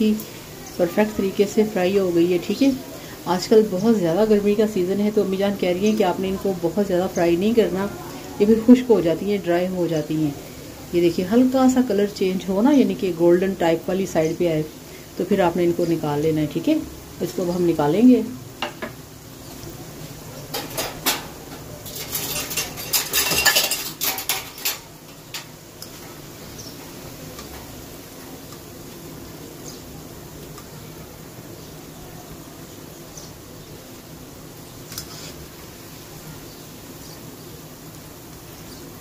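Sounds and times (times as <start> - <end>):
oil frying: 0.0 - 39.0
wire skimmer scraping a wok: 20.4 - 26.2, 34.8 - 35.8.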